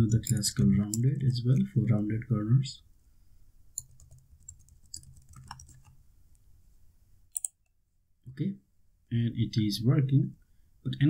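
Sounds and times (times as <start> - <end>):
computer keyboard keys clicking: 3.8 - 5.9, 7.4 - 7.6.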